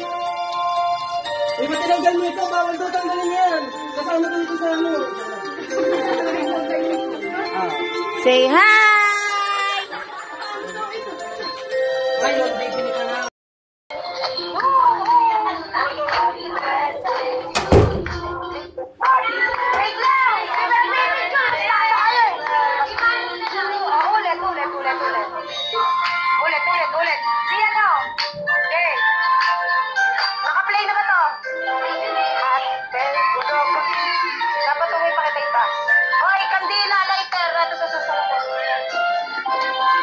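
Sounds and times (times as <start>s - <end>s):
children calling and chattering: 1.6s - 13.3s, 14.4s - 28.2s, 31.6s - 40.0s
song with sung vocals: 13.9s - 40.0s.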